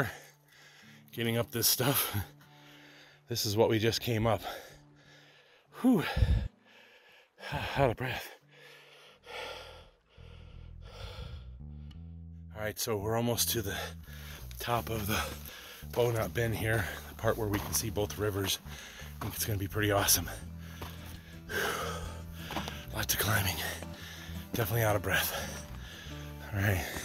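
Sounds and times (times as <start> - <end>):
background music: 0.0 - 27.0
man breathing hard: 0.3 - 1.1, 2.4 - 3.3, 4.5 - 12.1, 13.8 - 14.6, 15.2 - 15.9, 18.6 - 19.2, 20.4 - 22.9, 23.6 - 24.6, 25.4 - 27.0.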